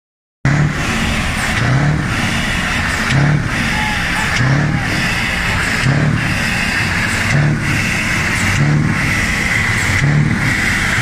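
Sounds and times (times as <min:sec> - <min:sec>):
diesel engine running loud: 0:00.4 - 0:11.0.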